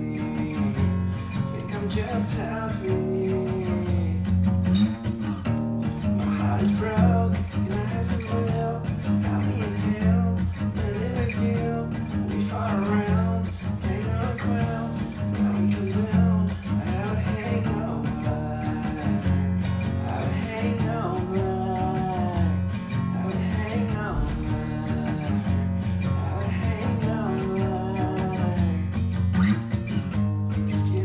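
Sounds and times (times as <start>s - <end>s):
acoustic guitar playing: 0.0s - 31.0s.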